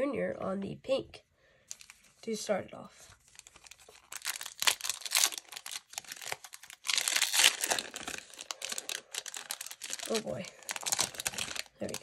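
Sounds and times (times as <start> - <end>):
wrapper tearing and crinkling: 1.7 - 2.1, 3.2 - 12.0.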